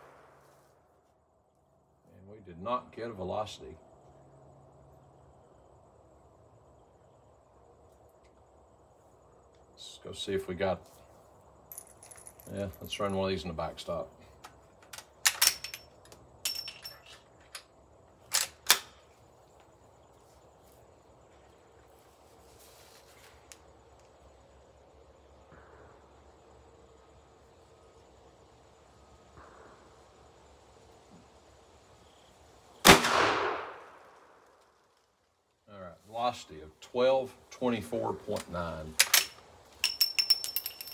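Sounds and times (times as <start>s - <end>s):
loud rifle shot: 0.0s - 0.5s, 32.8s - 34.4s.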